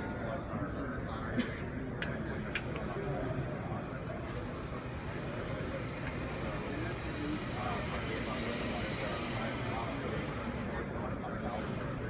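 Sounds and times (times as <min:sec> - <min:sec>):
distant indistinct voices: 0:00.0 - 0:12.0.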